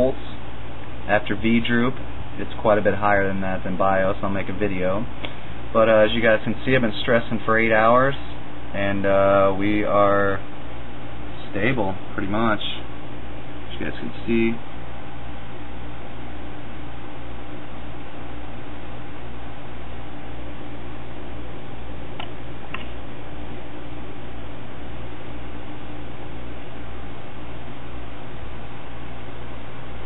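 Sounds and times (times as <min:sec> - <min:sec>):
computer fans whirring: 0:00.0 - 0:30.0.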